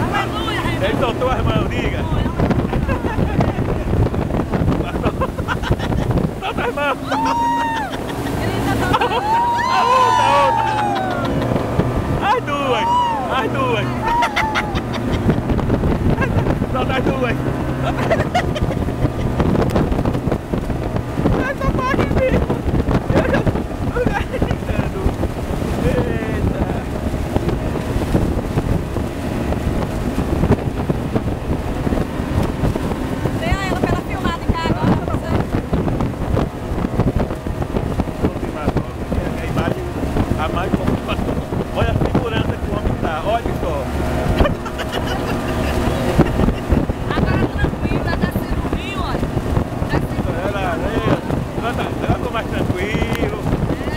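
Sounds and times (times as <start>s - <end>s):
speedboat engine running: 0.0s - 53.9s
wind buffeting microphone: 0.0s - 53.9s.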